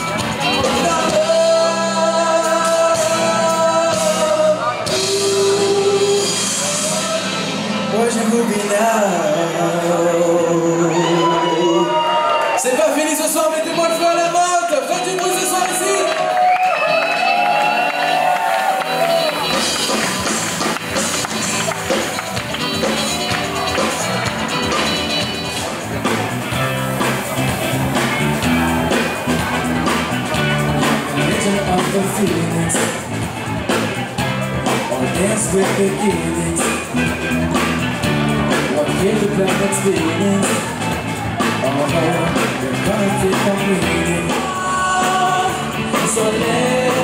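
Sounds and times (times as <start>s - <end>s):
bass and drums beat: 0.0s - 8.0s, 18.1s - 47.0s
live rock band playing: 0.0s - 47.0s
melodic lead line: 16.8s - 47.0s.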